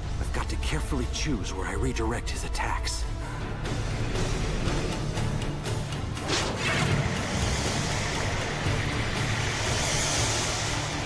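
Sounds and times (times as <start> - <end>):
background music: 0.0 - 11.0
low drone: 3.0 - 11.0
rushing wind-like noise effect: 6.6 - 11.0.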